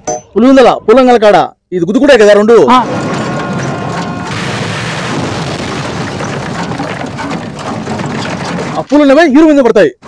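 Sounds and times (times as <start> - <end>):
rumbling and clattering debris: 2.7 - 9.8.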